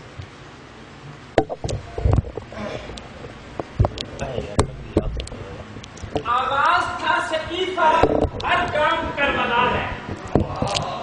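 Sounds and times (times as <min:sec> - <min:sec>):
man speaking: 0:04.1 - 0:11.0.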